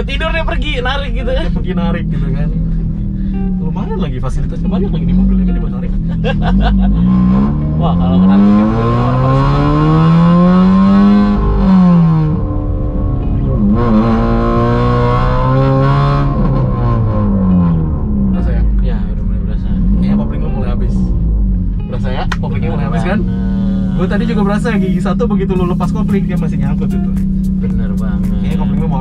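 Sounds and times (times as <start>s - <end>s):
car engine accelerating: 0.0s - 29.0s.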